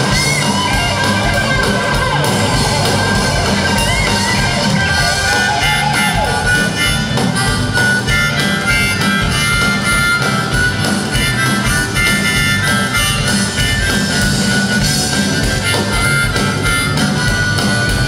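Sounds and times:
bluesy harmonica solo: 0.0s - 18.0s
military band backing: 0.0s - 18.0s.

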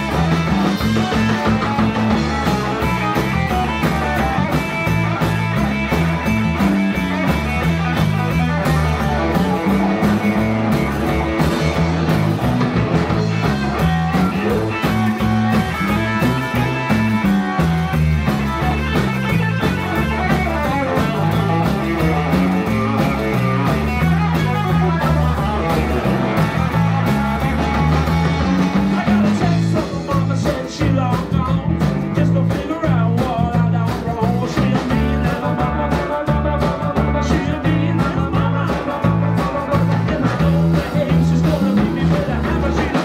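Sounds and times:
drum kit beat: 0.0s - 43.0s
electric bass: 0.0s - 43.0s
electric guitar: 0.0s - 43.0s.

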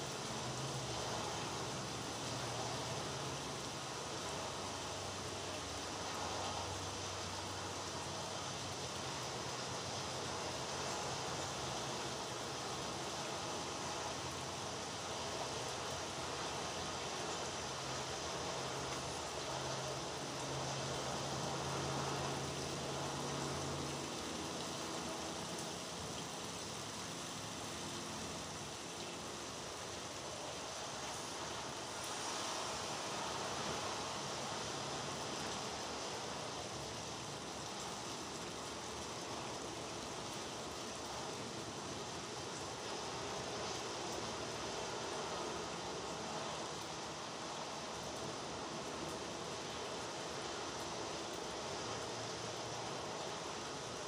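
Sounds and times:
steady rain falling: 0.0s - 54.0s.

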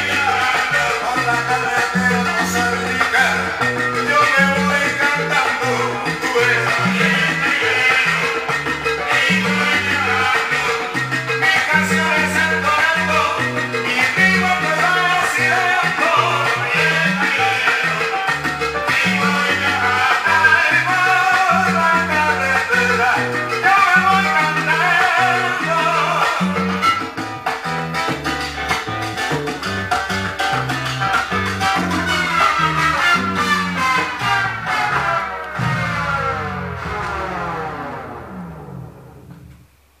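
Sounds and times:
salsa record playing: 0.0s - 40.0s.

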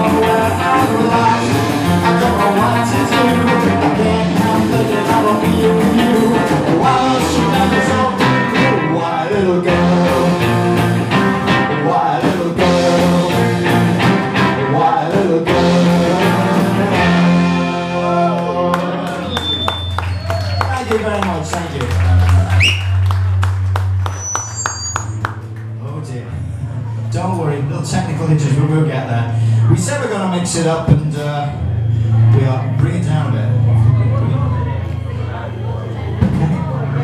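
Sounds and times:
person singing: 0.0s - 19.4s
rock and roll band playing: 0.0s - 25.8s
audience clapping: 18.3s - 25.8s
audience whistling: 18.7s - 25.7s.

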